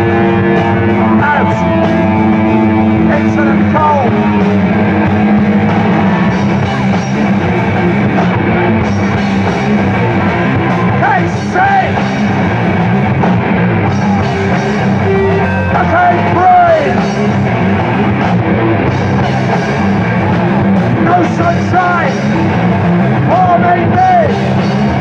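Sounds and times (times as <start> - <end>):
bass guitar: 0.0 - 25.0
distorted electric guitars: 0.0 - 25.0
drum kit: 0.0 - 25.0
guitar sliding notes: 0.0 - 25.0.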